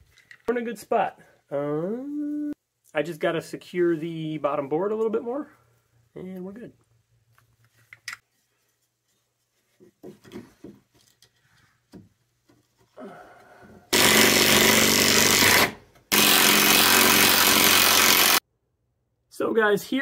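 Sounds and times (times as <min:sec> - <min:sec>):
drill driving screws into wood: 0:13.9 - 0:18.4.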